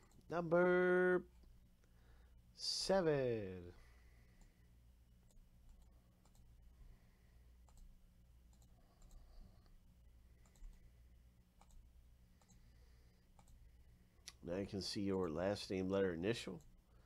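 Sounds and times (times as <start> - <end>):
computer mouse clicks: 5.2 - 6.5, 7.6 - 7.9, 8.5 - 9.3, 10.4 - 10.9, 11.6 - 11.8, 12.4 - 12.6, 13.3 - 13.6.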